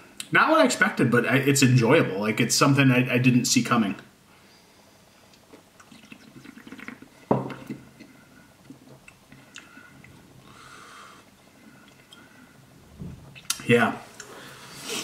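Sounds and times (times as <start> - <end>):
person sipping and swallowing: 5.3 - 12.4.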